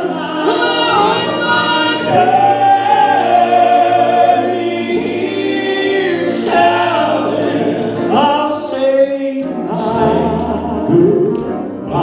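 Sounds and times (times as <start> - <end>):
male voices singing in harmony: 0.0 - 12.0.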